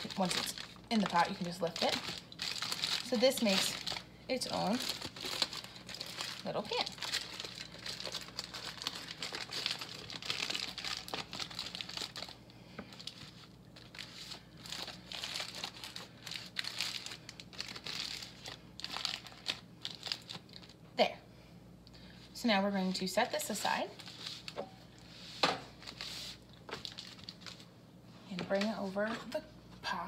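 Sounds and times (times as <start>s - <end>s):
aluminum foil crinkling: 0.0s - 20.8s, 23.0s - 24.7s, 25.7s - 27.7s.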